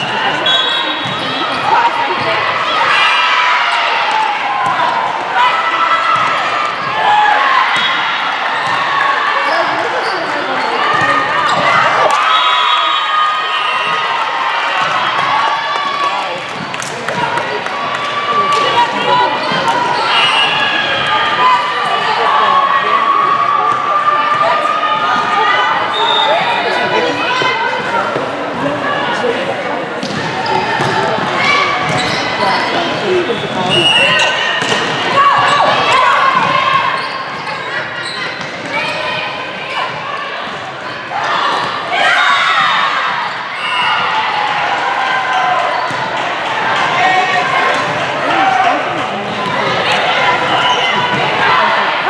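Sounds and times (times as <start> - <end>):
voices of players and spectators: 0.0 - 52.0
ball bouncing on court floor: 8.6 - 8.8, 30.0 - 33.9, 34.6 - 36.5.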